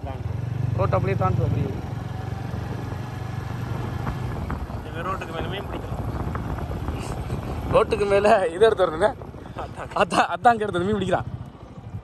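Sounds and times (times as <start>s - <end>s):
motorcycle engine and road rumble: 0.0s - 12.0s.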